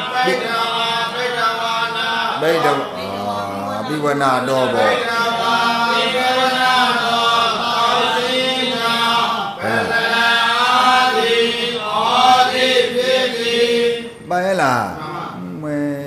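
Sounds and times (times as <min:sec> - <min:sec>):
person chanting: 0:00.0 - 0:16.0.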